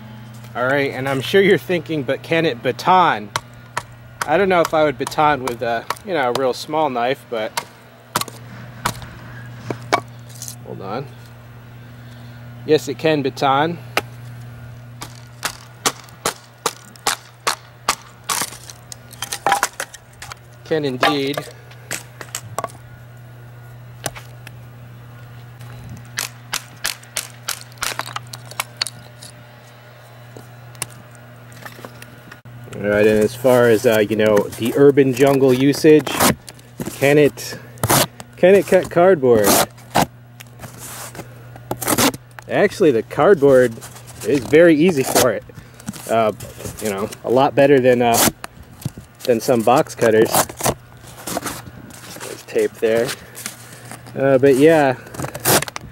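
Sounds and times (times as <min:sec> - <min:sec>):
knife shaving wood: 0:33.0 - 0:42.7, 0:43.3 - 0:47.4, 0:49.1 - 0:55.8
knife slicing cardboard: 0:36.0 - 0:36.4, 0:41.8 - 0:42.2, 0:48.1 - 0:48.4, 0:50.2 - 0:51.6.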